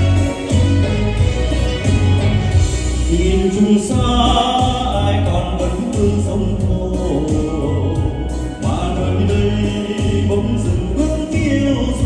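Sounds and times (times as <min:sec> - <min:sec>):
full band accompaniment: 0:00.0 - 0:12.0
man singing a slow ballad: 0:03.0 - 0:12.0.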